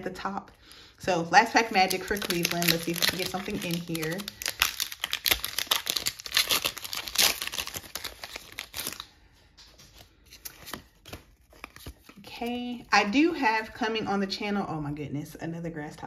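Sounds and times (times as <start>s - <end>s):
foil wrapper crinkling and tearing: 1.4s - 12.3s.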